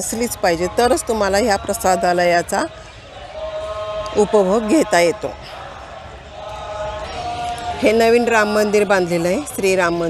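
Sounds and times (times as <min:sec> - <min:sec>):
woman's voice: 0:00.0 - 0:02.7, 0:04.2 - 0:05.5, 0:07.8 - 0:10.0.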